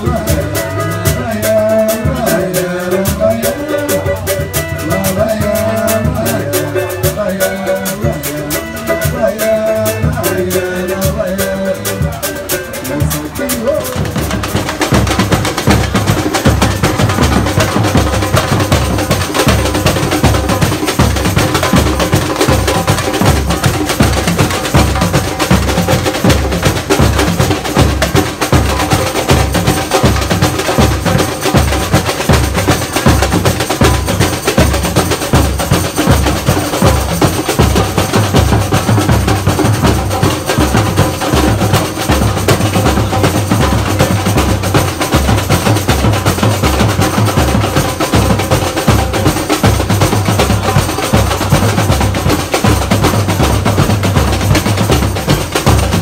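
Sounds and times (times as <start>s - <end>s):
bass drums beating: 0.0s - 56.0s
fast snare drum hits: 13.0s - 56.0s.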